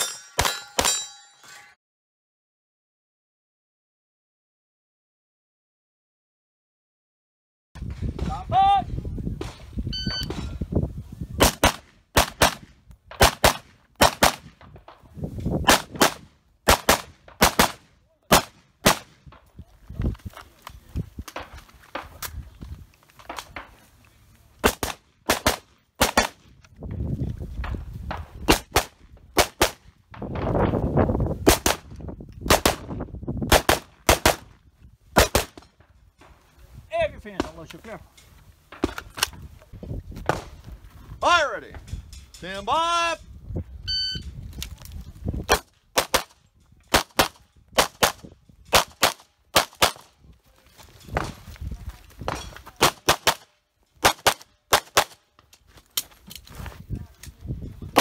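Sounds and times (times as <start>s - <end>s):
shot timer beep: 9.9s - 10.3s, 43.8s - 44.3s.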